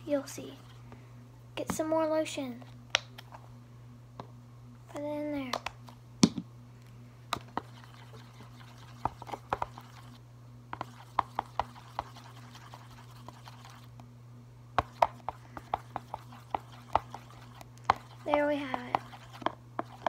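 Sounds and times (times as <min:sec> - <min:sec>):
soft wet mixing: 0:00.0 - 0:01.9, 0:06.8 - 0:14.1, 0:14.8 - 0:20.0
pen tapping a container: 0:10.8 - 0:12.2, 0:14.8 - 0:20.0.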